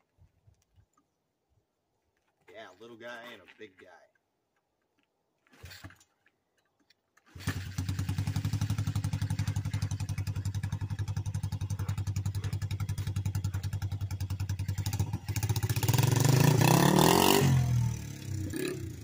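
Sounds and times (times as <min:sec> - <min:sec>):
pit bike engine idling and revving: 0:07.3 - 0:19.0.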